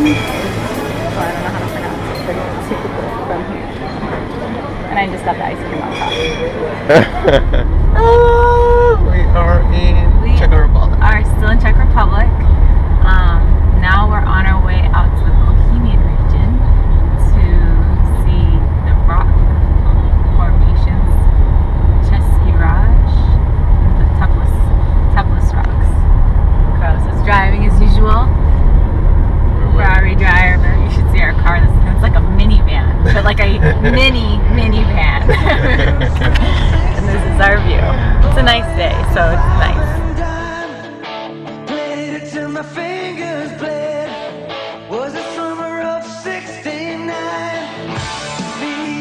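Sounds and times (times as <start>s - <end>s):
people talking and laughing: 0.0s - 10.7s, 32.8s - 40.2s
car driving rumble inside cabin: 6.9s - 40.6s.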